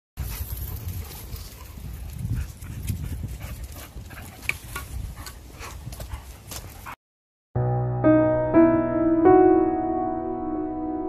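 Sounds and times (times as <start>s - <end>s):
dog panting: 1.6s - 7.0s.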